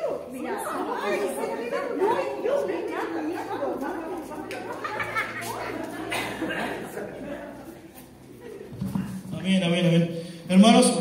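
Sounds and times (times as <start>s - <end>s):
people chattering in echoing hall: 0.0s - 11.0s.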